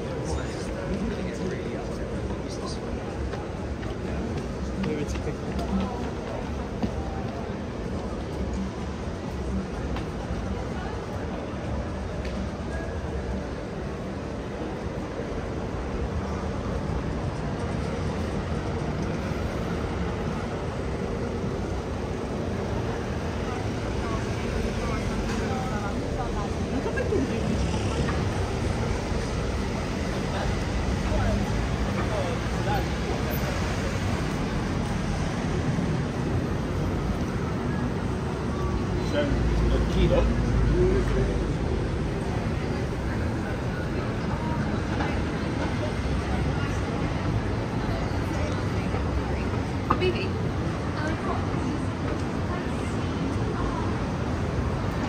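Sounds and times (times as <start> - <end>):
passers-by talking: 0.0 - 55.0
road traffic with cars passing: 0.0 - 55.0.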